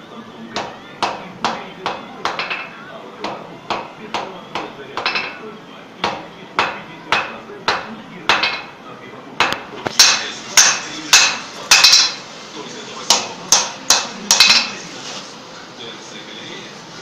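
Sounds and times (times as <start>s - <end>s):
hammer striking steel on anvil: 0.6s - 5.4s, 6.0s - 8.8s, 9.4s - 12.2s, 13.1s - 14.8s.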